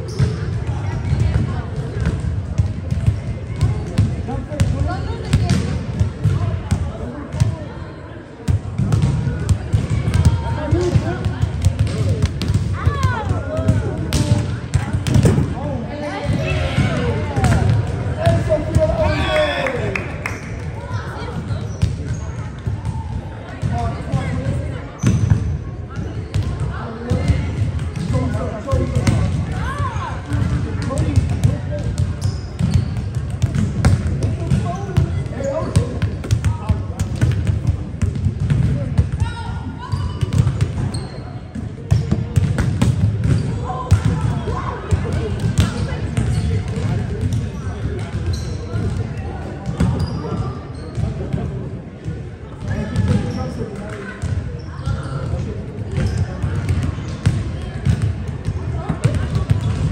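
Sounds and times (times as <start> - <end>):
indistinct chatter: 0.0 - 59.9.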